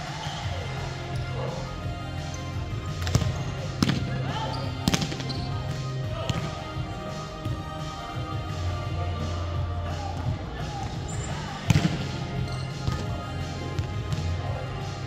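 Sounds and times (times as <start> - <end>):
background music: 0.0 - 15.0
voices: 0.0 - 15.0
volleyball hits: 2.8 - 7.7, 10.1 - 14.6.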